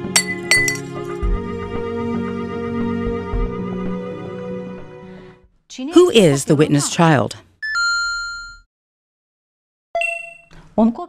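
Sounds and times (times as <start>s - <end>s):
glass bottle clinking on floor: 0.1s - 1.0s.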